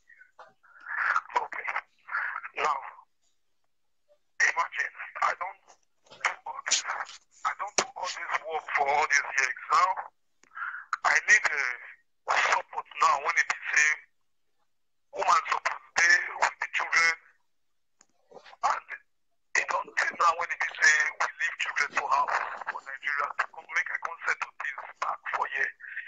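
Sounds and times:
person speaking over telephone: 0:00.0 - 0:03.1, 0:04.4 - 0:14.2, 0:15.1 - 0:17.4, 0:18.1 - 0:26.0
distorted voice over video call: 0:00.0 - 0:26.0.

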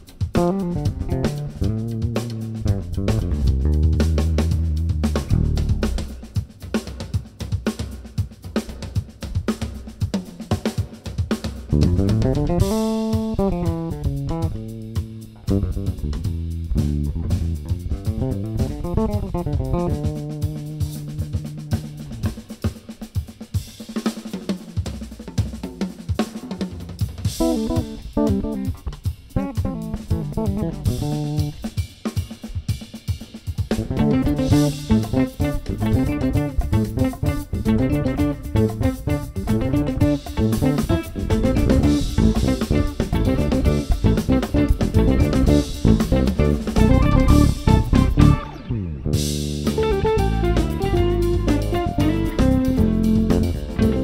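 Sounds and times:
fingerstyle electric bass: 0:00.0 - 0:06.4, 0:11.7 - 0:22.6, 0:27.3 - 0:31.8, 0:33.7 - 0:54.0
drum kit groove: 0:00.0 - 0:54.0.

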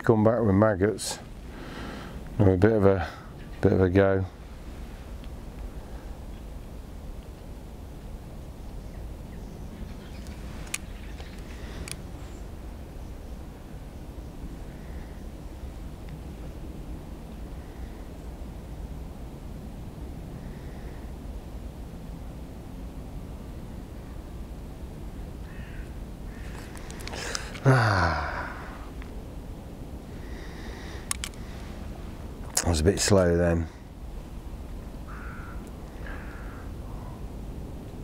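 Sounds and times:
crow cawing: 0:25.4 - 0:28.7, 0:35.0 - 0:37.2
sharp clicks: 0:31.0 - 0:31.4.

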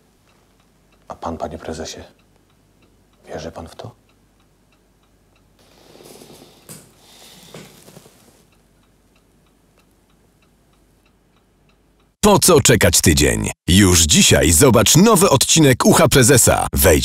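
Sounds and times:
clock ticking: 0:00.1 - 0:05.6, 0:08.5 - 0:17.0
soft rustling: 0:05.6 - 0:08.6.

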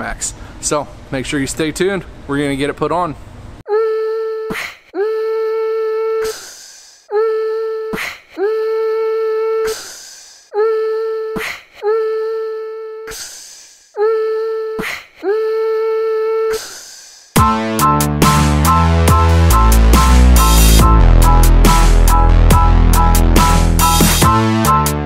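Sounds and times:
sustained synthetic note: 0:17.7 - 0:25.0.

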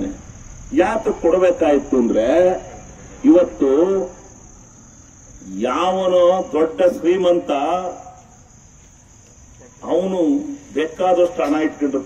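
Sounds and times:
man's amplified speech: 0:00.0 - 0:04.3, 0:05.4 - 0:08.2, 0:09.8 - 0:12.0
high-pitched insect trilling: 0:00.0 - 0:12.0.

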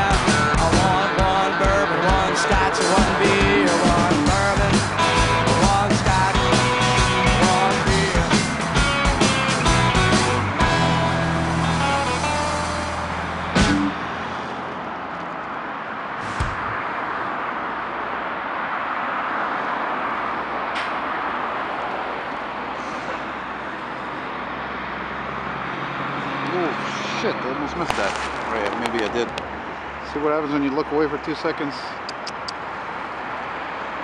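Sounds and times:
blues song: 0:00.0 - 0:14.0
low engine drone: 0:00.0 - 0:15.4
highway traffic: 0:00.0 - 0:34.0.

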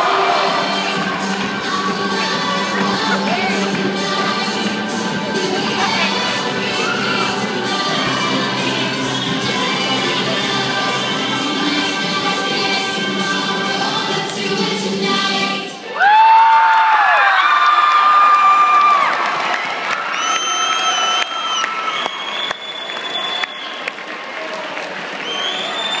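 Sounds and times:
crowd cheering and screaming: 0:00.0 - 0:01.5, 0:05.7 - 0:07.6, 0:15.8 - 0:26.0
performance music: 0:00.0 - 0:15.8
high-pitched cheers: 0:15.9 - 0:26.0.

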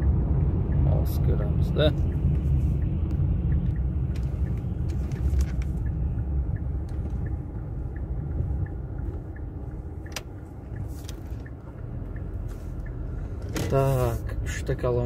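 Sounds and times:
road and engine rumble in car: 0:00.0 - 0:15.0
turn signal ticking: 0:00.0 - 0:15.0.

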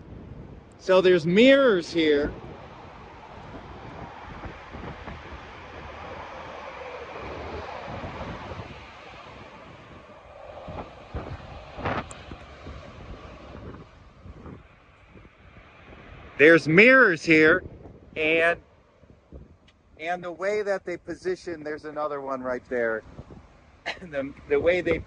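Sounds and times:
steady outdoor noise: 0:00.0 - 0:25.0
wind buffeting microphone: 0:00.0 - 0:25.0.

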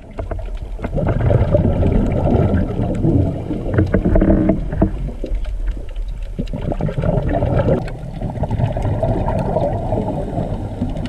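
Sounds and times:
underwater bubbles gurgling: 0:00.0 - 0:11.0
small clicks: 0:03.6 - 0:09.5.

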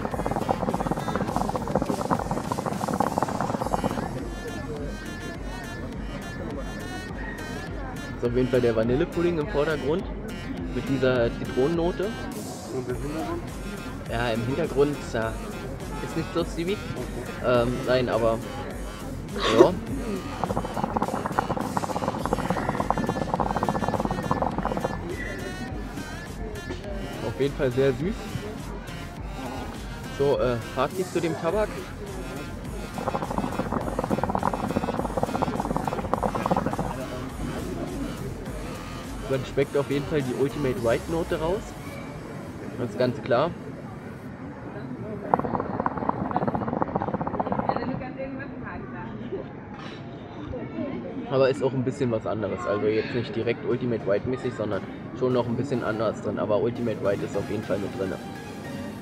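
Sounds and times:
hookah water bubbling: 0:00.0 - 0:05.1, 0:14.1 - 0:26.3, 0:29.3 - 0:41.8, 0:45.1 - 0:48.0.

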